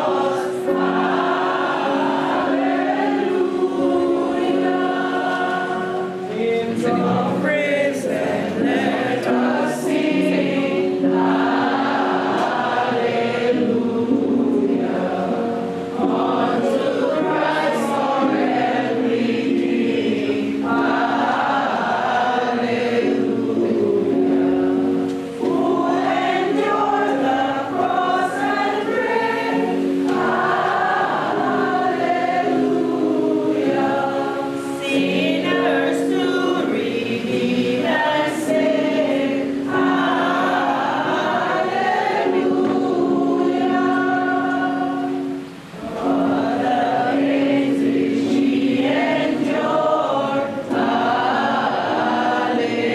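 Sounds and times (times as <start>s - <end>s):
group singing a hymn: 0.0s - 52.9s.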